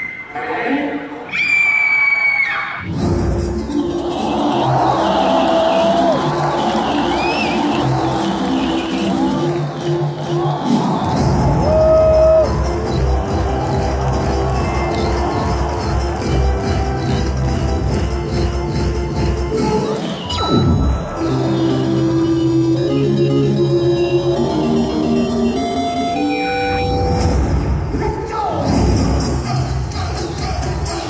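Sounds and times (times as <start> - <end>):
large crowd noise: 0.0 - 31.0
dance music through sound system: 3.0 - 22.6, 28.6 - 31.0.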